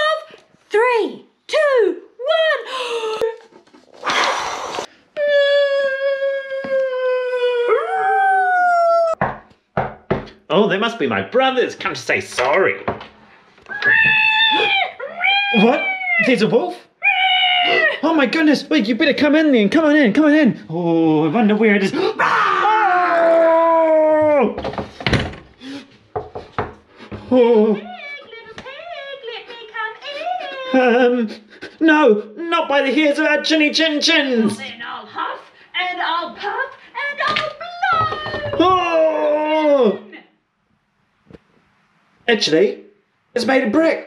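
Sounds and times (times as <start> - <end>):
hard blowing breath: 4.0 - 5.1, 25.5 - 26.1
long vocal cry rising in pitch: 4.0 - 9.2
knocks on wooden door: 9.2 - 10.4, 12.8 - 13.1, 26.1 - 27.3, 37.9 - 38.7.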